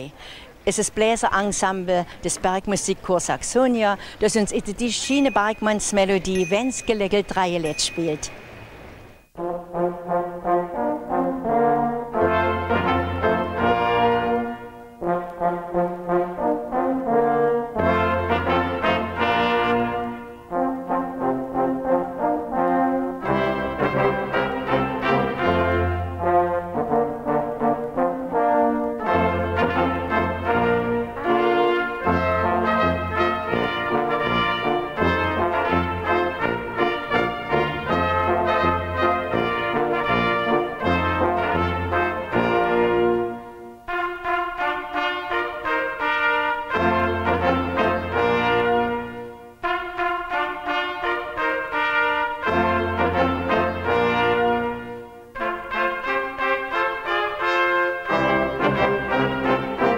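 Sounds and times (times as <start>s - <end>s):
brass band playing: 9.4s - 59.9s.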